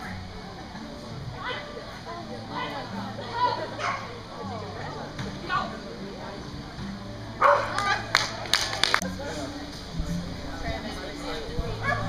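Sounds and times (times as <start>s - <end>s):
dog barking: 3.8s - 4.1s, 7.4s - 8.0s.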